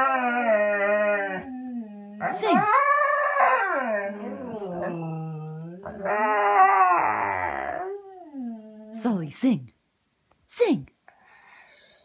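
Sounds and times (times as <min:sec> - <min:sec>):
dogs howling: 0:02.2 - 0:08.6.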